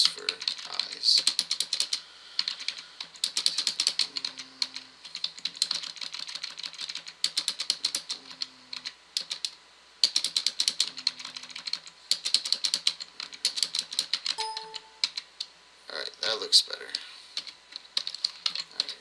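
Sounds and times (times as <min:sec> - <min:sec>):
computer keyboard typing: 0:00.0 - 0:15.3, 0:16.9 - 0:19.0.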